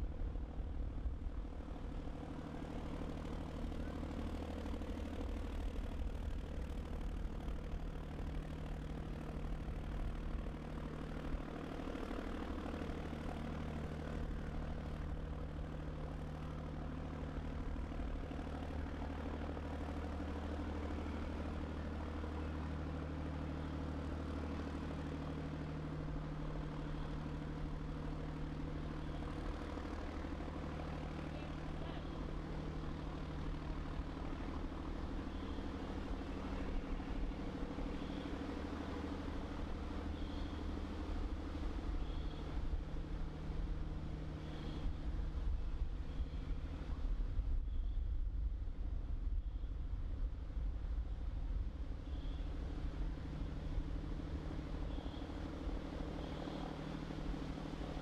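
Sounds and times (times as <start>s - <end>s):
low mechanical drone: 0.0s - 58.0s.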